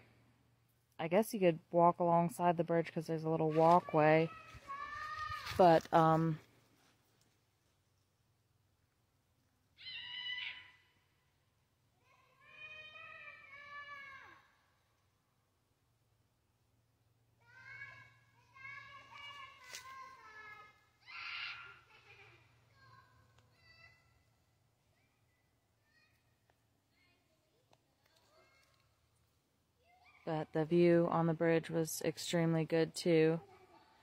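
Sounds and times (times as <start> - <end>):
drawn-out animal cries: 9.8 - 10.8.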